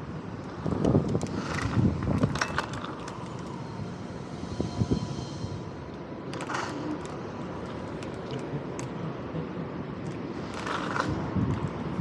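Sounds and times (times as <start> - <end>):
scooter tyres rumbling on concrete: 10.4 - 12.0.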